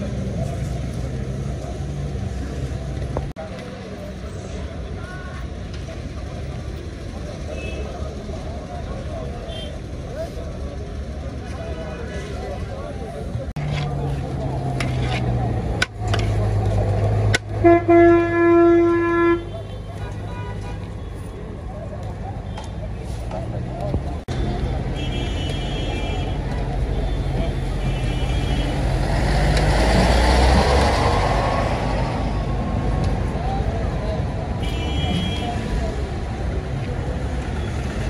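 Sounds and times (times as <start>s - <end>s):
background chatter: 0.0s - 17.6s, 18.2s - 38.0s
traffic engine hum: 0.0s - 38.0s
vehicle horn honking: 17.6s - 20.9s, 25.0s - 26.4s, 34.6s - 35.6s.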